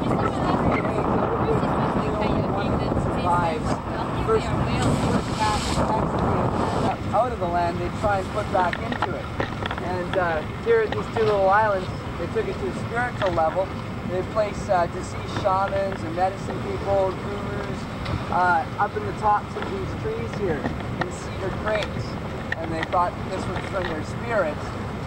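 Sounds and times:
indistinct voices: 0.0 - 17.7
boat on choppy water: 0.0 - 25.0
wind buffeting microphone: 0.0 - 25.0.

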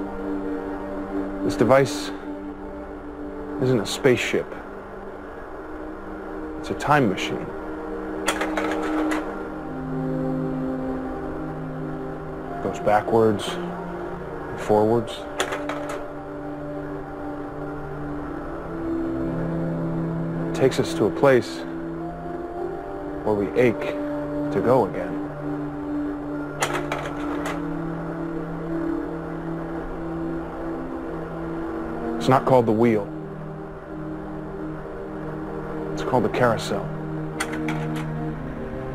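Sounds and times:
soft sustained music: 0.0 - 38.9
slide projector clicks: 37.4 - 38.1.

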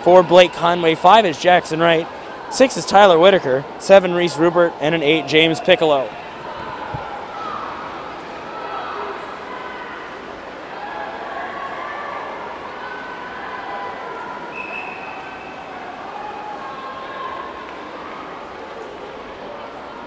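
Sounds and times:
crowd shouting and cheering: 0.0 - 20.0.

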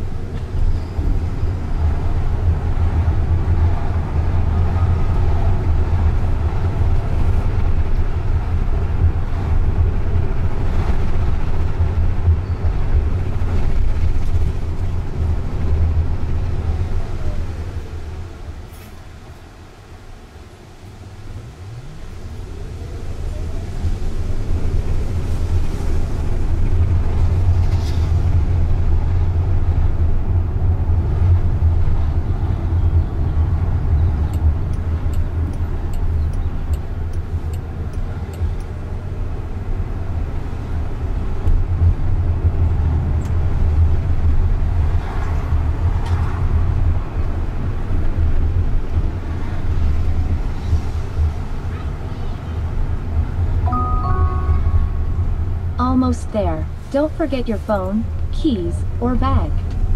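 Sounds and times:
road and tyre rumble in car: 0.0 - 53.7, 54.4 - 59.9.

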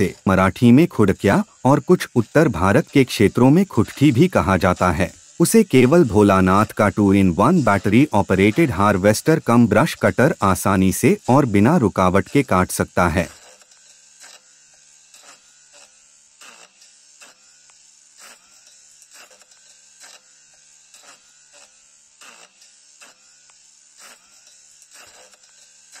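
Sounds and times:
electric brush cutter buzz: 0.0 - 26.0.

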